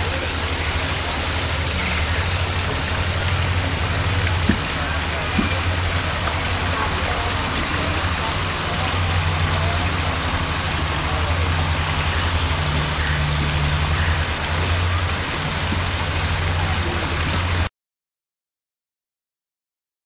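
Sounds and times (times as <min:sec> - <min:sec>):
waterfall splashing over rocks: 0:00.0 - 0:17.7.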